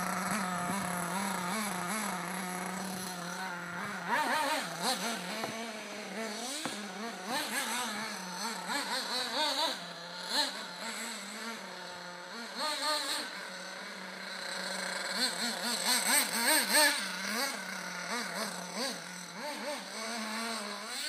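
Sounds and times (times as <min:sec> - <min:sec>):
model buggy engine revving: 0:00.0 - 0:21.0.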